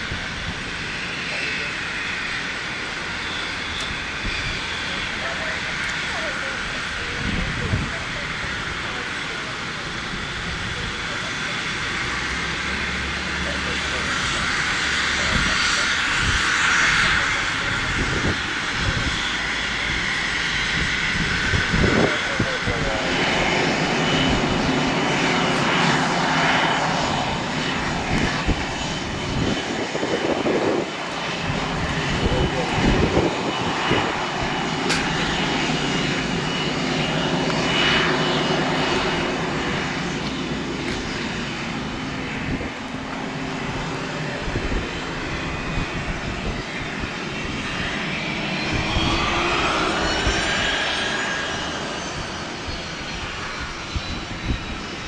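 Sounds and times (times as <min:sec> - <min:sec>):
jet engines rushing and whining: 0:00.0 - 0:55.0.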